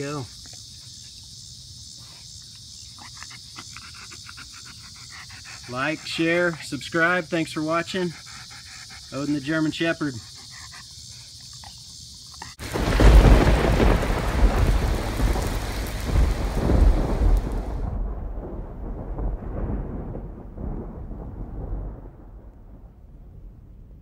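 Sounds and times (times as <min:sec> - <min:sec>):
deep thunder-like boom: 0:12.6 - 0:24.0.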